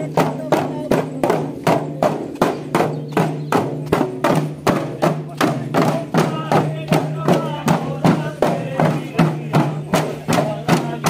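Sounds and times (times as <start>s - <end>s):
hand drums in folk rhythm: 0.0s - 11.0s
men's voices: 0.0s - 11.0s.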